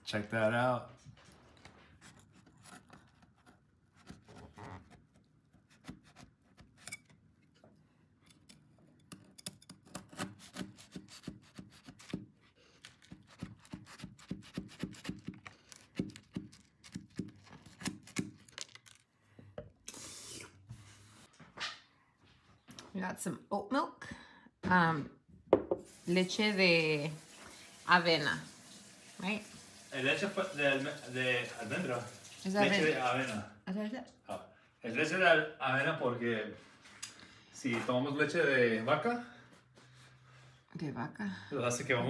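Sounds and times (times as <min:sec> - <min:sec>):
blade scraping cardboard: 0:02.1 - 0:07.1, 0:09.5 - 0:18.4
knife sawing through cookies: 0:09.6 - 0:18.1.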